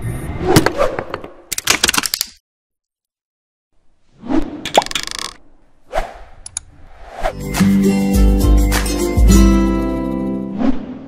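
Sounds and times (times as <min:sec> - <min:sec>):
clicks and pops: 0:04.6 - 0:05.4.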